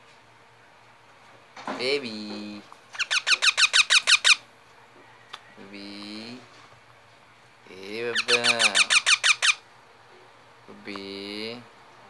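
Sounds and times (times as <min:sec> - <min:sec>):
parakeet shrill squeaky calls: 0:02.9 - 0:04.4, 0:08.1 - 0:09.6.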